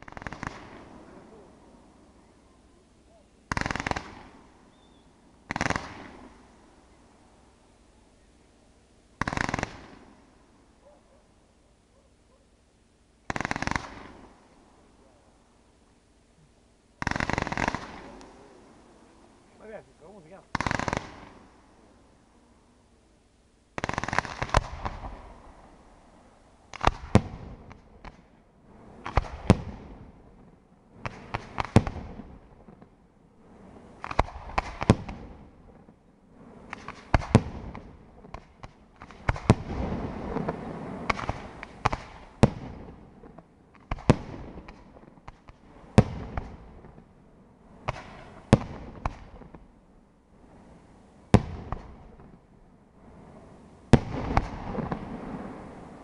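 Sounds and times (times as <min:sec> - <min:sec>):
firework shells bursting: 0:00.0 - 0:01.4, 0:03.5 - 0:06.6, 0:09.2 - 0:10.2, 0:13.2 - 0:14.6, 0:17.0 - 0:18.9, 0:20.1 - 0:21.6, 0:23.8 - 0:25.2
fireworks crackling: 0:00.0 - 0:10.8, 0:13.2 - 0:23.0, 0:23.7 - 0:56.0.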